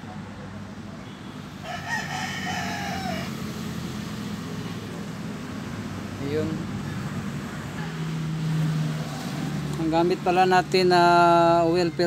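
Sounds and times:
rooster crowing: 1.6s - 3.7s.

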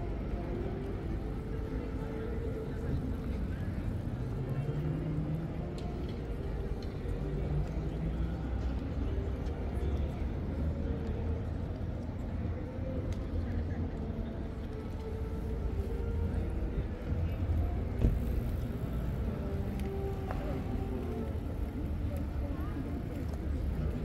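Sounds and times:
faint voices of passers-by: 0.0s - 24.0s.

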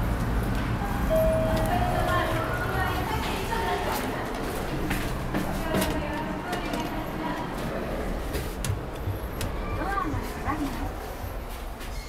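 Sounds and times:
elevator chime: 0.8s - 2.9s.

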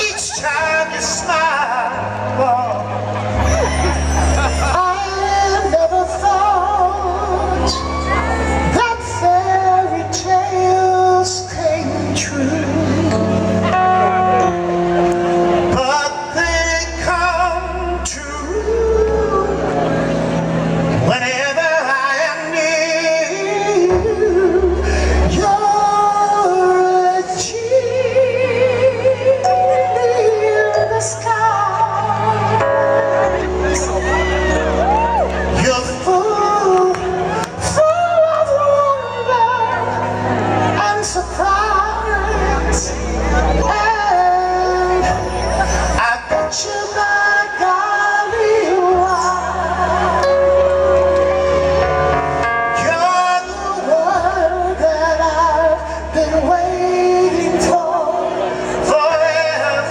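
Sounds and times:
live soul ballad band: 0.0s - 59.9s.

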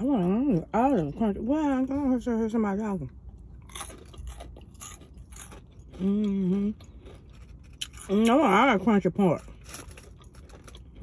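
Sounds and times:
crunchy chewing of fried chicken: 3.0s - 11.0s.

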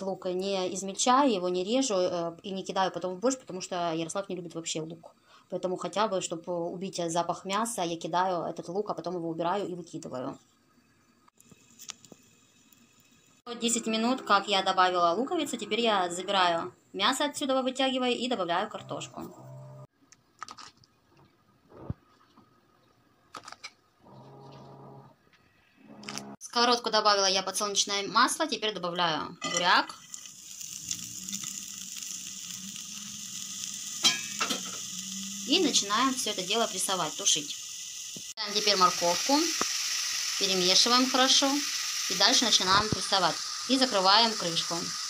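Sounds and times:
beetroot sizzling in oil: 10.8s - 16.2s, 27.5s - 45.0s
broth simmering in a pot: 29.8s - 45.0s.

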